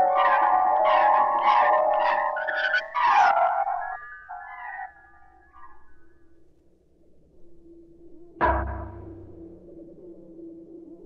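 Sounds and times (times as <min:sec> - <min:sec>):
sustained high synth tones: 0:00.0 - 0:05.9
low steady tone: 0:08.4 - 0:10.7.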